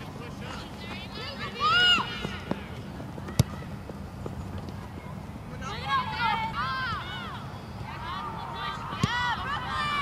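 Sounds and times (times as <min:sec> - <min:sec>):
outdoor soccer field noise: 0:00.0 - 0:10.0
spectators shouting: 0:05.6 - 0:10.0.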